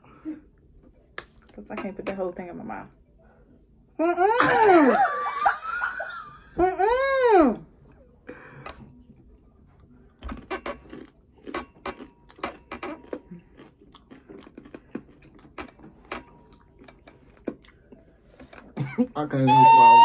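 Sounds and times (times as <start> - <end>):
crisp crunching of chips: 10.6 - 15.6.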